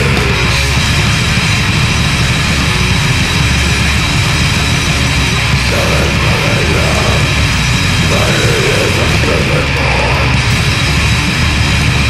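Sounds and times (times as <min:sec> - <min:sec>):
extreme metal song: 0:00.0 - 0:12.0.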